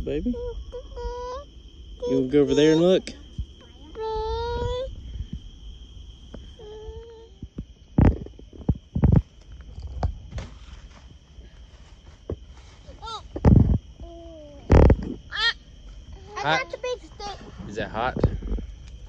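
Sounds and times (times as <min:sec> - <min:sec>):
night insects chorus: 0:00.0 - 0:19.0.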